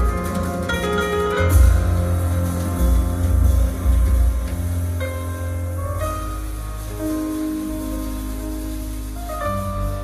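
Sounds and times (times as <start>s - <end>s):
piano chords: 0.0s - 10.0s
upright bass notes: 0.0s - 10.0s.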